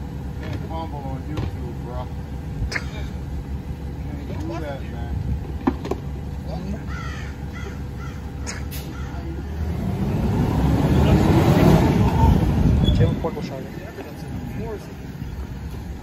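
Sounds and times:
garbage truck diesel engine: 0.0s - 16.0s
crow cawing: 6.8s - 9.5s.

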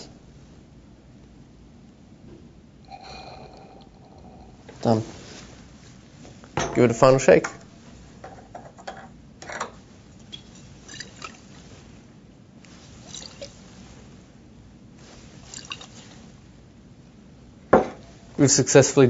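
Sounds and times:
water sloshing in glass flask: 10.2s - 11.7s, 12.8s - 13.9s, 15.2s - 16.2s.

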